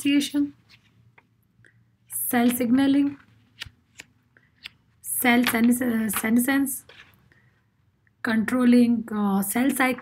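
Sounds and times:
woman speaking: 0:00.0 - 0:00.6, 0:02.1 - 0:03.3, 0:05.0 - 0:06.9, 0:08.2 - 0:10.0.

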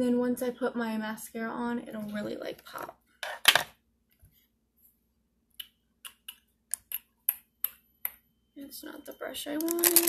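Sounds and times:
cosmetic containers clicking: 0:09.6 - 0:10.0.

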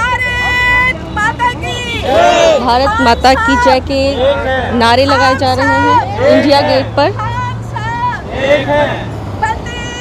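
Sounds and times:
voices shouting a slogan: 0:00.0 - 0:10.0.

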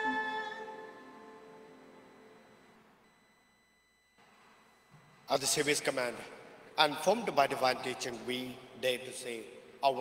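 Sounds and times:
music: 0:00.0 - 0:02.6
high-pitched electronic tone: 0:00.0 - 0:05.9.

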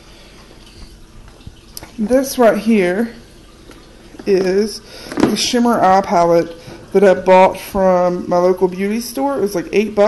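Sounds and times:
faint clicks and knocks of containers: 0:00.3 - 0:02.1, 0:03.4 - 0:07.0.

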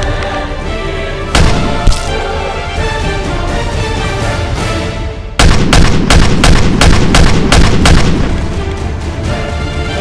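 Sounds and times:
background music: 0:00.0 - 0:10.0
gunshots: 0:01.4 - 0:02.2, 0:05.4 - 0:08.6.

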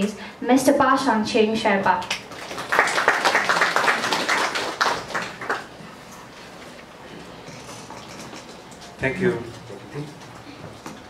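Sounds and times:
audience applauding: 0:02.3 - 0:05.8.

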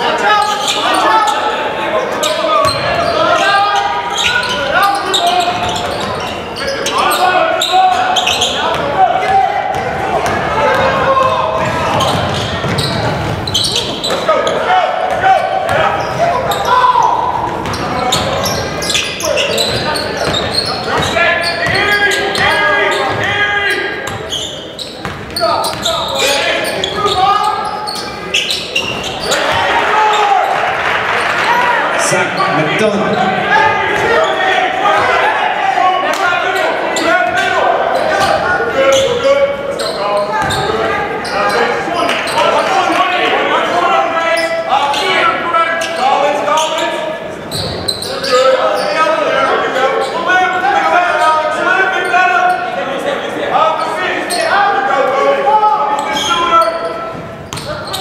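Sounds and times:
shouting and chatter: 0:00.0 - 0:58.0.

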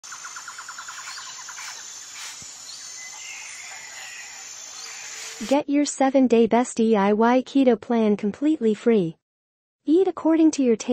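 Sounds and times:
bird chirping trill: 0:00.0 - 0:05.5.

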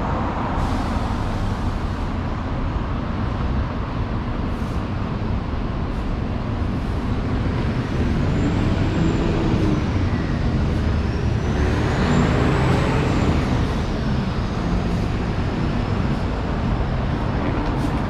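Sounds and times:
bus passing: 0:00.0 - 0:18.0
road traffic: 0:00.0 - 0:18.0.

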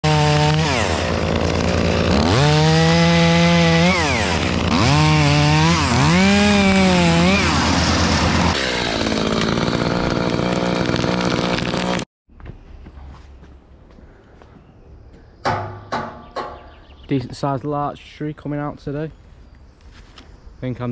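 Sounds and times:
chainsaw engine revving: 0:00.0 - 0:12.1.

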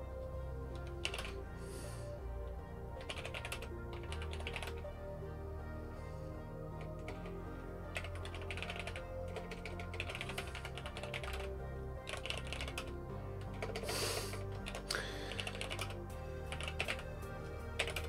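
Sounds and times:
soft background music: 0:00.0 - 0:18.0
computer keyboard typing: 0:00.8 - 0:01.4, 0:03.0 - 0:04.8, 0:06.8 - 0:18.0.

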